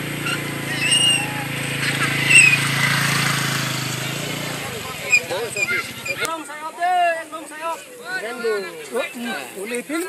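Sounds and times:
small engine humming: 0:00.0 - 0:06.3
high whistle-like call: 0:00.2 - 0:01.5, 0:02.2 - 0:02.7.

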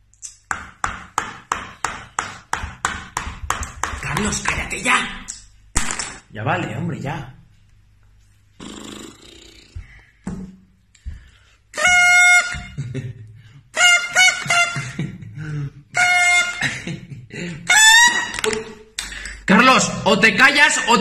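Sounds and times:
toy horn tooting: 0:11.8 - 0:12.8, 0:13.8 - 0:14.9, 0:16.0 - 0:16.6, 0:17.7 - 0:18.6.

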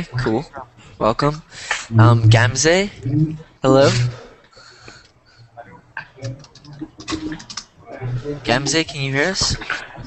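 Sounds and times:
faint voices: 0:05.5 - 0:10.0
keyboard typing: 0:06.1 - 0:08.6.

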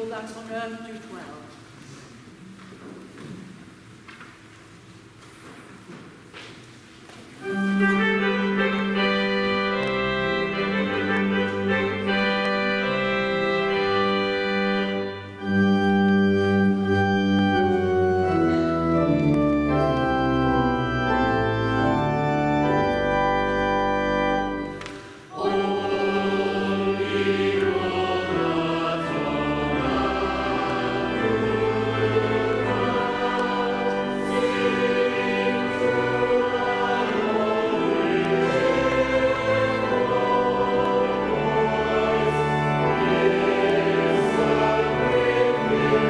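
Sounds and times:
church organ chords: 0:07.4 - 0:46.0
people singing a hymn: 0:24.3 - 0:46.0.

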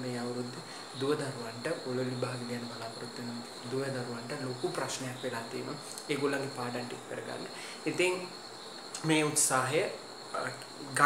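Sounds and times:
man talking: 0:00.0 - 0:08.3, 0:09.0 - 0:11.0
high-pitched insect trill: 0:00.0 - 0:11.0.

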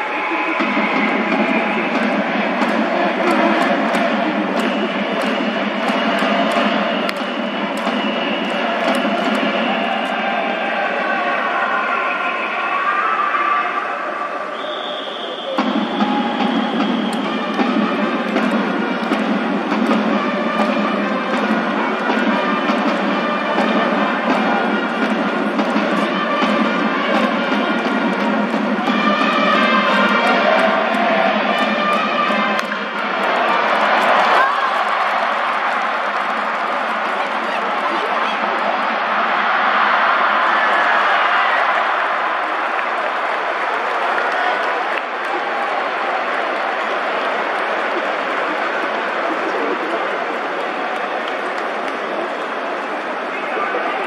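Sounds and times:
crowd cheering in rhythm: 0:00.0 - 0:54.0
sharp drum beats: 0:00.2 - 0:10.8, 0:15.5 - 0:42.1.

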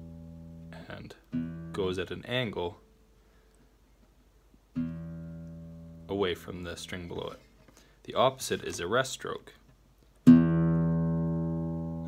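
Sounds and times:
classical guitar plucked: 0:00.0 - 0:02.0, 0:04.7 - 0:06.1, 0:10.2 - 0:12.0.

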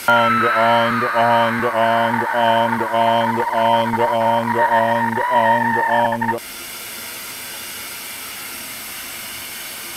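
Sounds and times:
television static hiss: 0:00.0 - 0:06.4.

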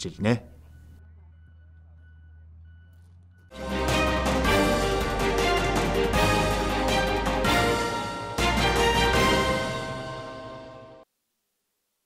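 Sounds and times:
distant construction machinery hum: 0:00.5 - 0:05.9.

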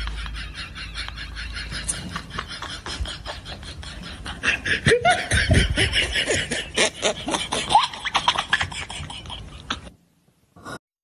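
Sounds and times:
person laughing and snickering: 0:00.0 - 0:10.0.

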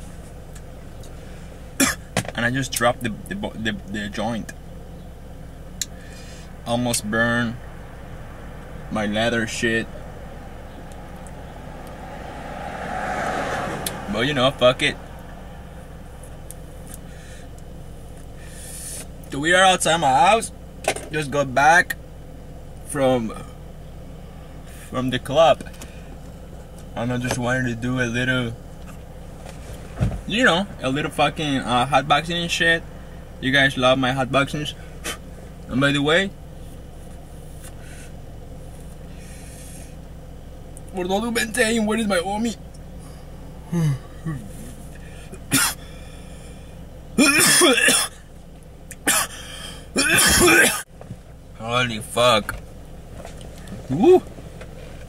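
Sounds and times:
low hum inside car: 0:00.0 - 0:55.0
soft rushing sound: 0:07.2 - 0:17.1.

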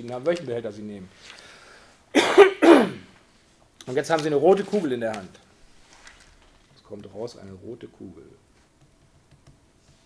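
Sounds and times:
man coughing: 0:02.2 - 0:03.1.

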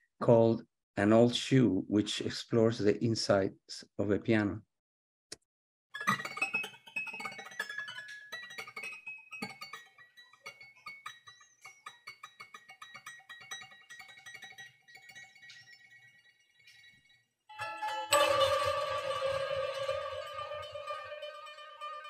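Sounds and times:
piano strings played: 0:17.8 - 0:22.0.

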